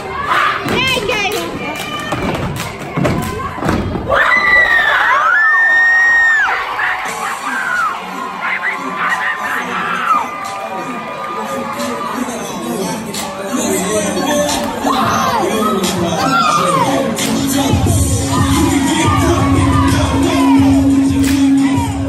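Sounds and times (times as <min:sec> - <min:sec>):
stomps and claps: 0:00.6 - 0:04.2
audience cheering and screaming: 0:04.0 - 0:12.4, 0:14.8 - 0:17.2, 0:17.8 - 0:22.0.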